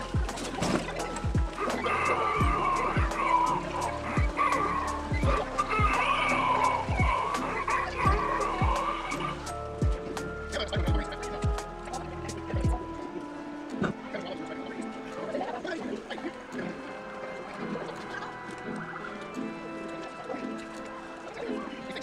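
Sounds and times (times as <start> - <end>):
spooky music with held tones: 0.0 - 22.0
wavering wailing sound: 0.0 - 22.0
deep drum hits: 0.1 - 1.8, 2.4 - 3.4, 4.2 - 4.4, 5.1 - 6.1, 6.9 - 7.4, 8.1 - 8.9, 9.8 - 10.1.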